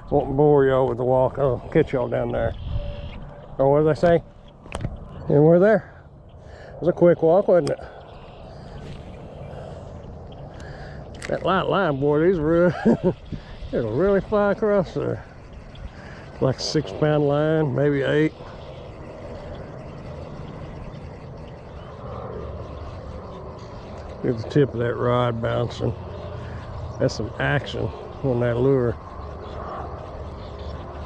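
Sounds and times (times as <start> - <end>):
outdoor background rumble: 0.0 - 31.0
steady low drone: 0.0 - 31.0.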